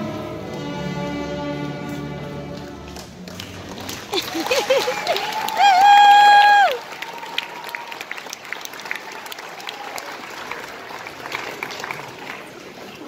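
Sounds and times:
audience applauding: 2.6 - 13.0.

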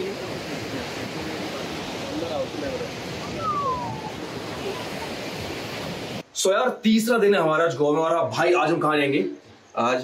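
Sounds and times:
surf washing onto beach: 0.0 - 6.2
wind on microphone: 0.0 - 6.2.

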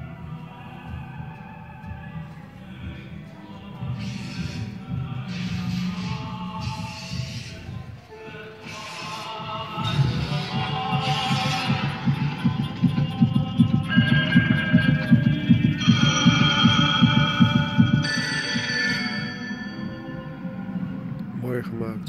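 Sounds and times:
sustained electronic chords: 9.2 - 22.0
low heartbeat-like pulsing: 9.8 - 18.7.

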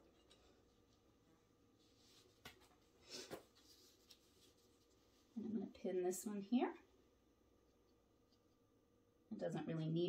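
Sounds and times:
soft fabric rustle: 0.2 - 5.6.

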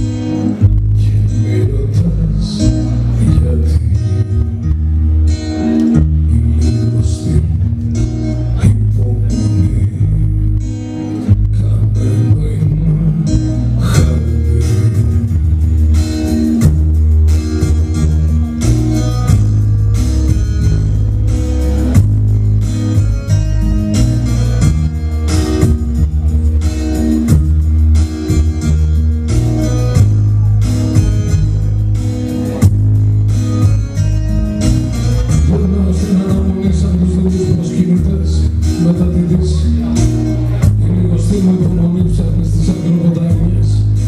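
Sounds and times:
heavy bass line: 0.0 - 44.0
plucked guitar line: 0.0 - 44.0
steady drum beat: 13.8 - 44.0.

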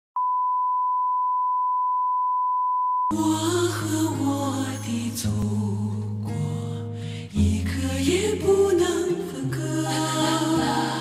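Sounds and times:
steady test tone beep: 0.2 - 3.1.

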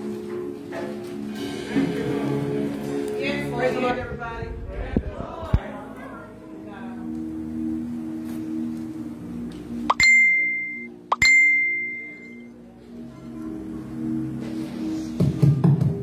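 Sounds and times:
soft keyboard chords: 2.2 - 14.8
loud bright ringing dings: 9.9 - 12.5.

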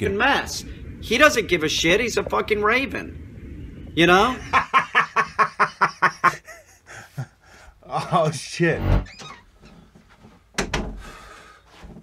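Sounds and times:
door opening: 8.8 - 9.8.

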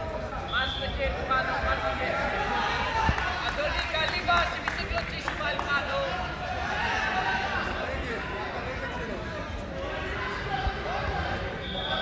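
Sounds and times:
indistinct voices in echoing hall: 0.0 - 12.0.

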